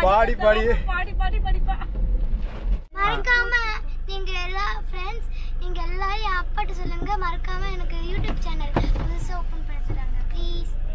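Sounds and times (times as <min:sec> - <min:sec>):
car cabin hum: 0:00.0 - 0:10.9
girl singing: 0:03.0 - 0:10.8.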